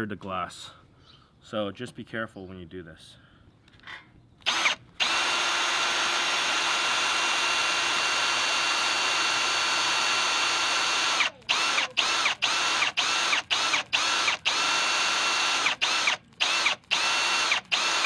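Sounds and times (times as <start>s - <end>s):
cordless drill boring metal: 4.4s - 18.0s.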